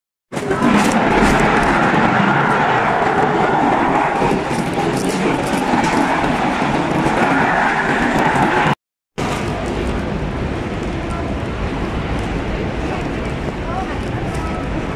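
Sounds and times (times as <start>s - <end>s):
escalator rumbling drone: 0.3s - 14.9s.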